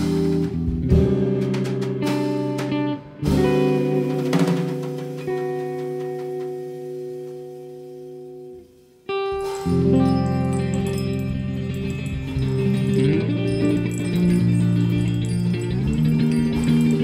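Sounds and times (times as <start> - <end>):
cymbal and drum strokes: 0.0 - 17.0
guitar chords: 0.0 - 17.0.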